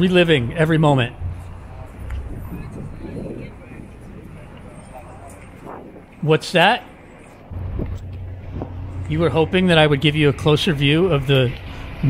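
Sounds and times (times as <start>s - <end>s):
city traffic rumble: 0.0s - 12.0s
faint passing sounds: 0.0s - 12.0s.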